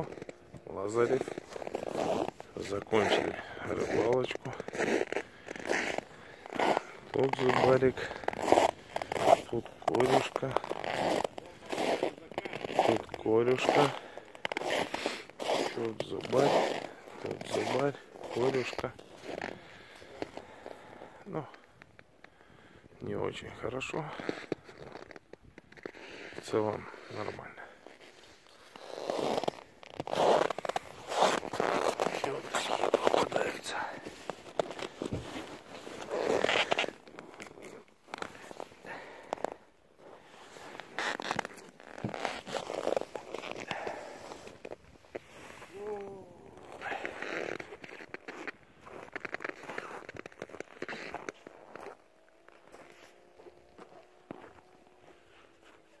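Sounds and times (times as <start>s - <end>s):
man talking indistinctly: 6.6s - 8.3s, 9.4s - 10.6s.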